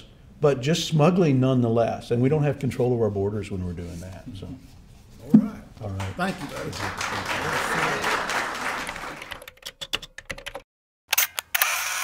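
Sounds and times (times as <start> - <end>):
audience applauding: 5.9 - 9.5
camera shutter clicks: 11.1 - 12.0.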